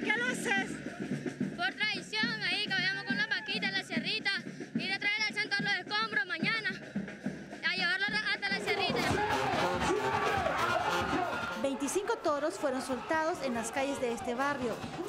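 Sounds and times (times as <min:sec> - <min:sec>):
street band playing: 0:00.0 - 0:15.0
child speaking: 0:01.6 - 0:06.8
bass drum: 0:08.1 - 0:11.9, 0:12.9 - 0:15.0
trumpet: 0:08.7 - 0:15.0.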